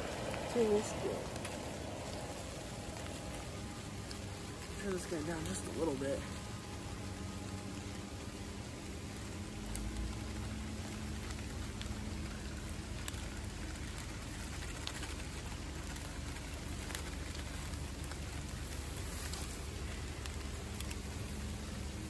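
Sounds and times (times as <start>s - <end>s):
fish frying in a pot: 0.0s - 22.0s.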